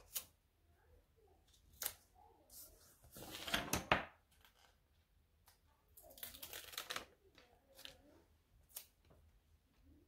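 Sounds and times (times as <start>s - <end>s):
paper rustling: 1.8s - 4.8s, 6.1s - 9.1s.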